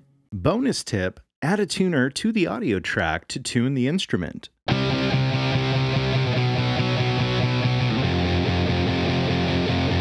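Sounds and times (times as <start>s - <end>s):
distorted electric guitar: 4.7s - 10.0s.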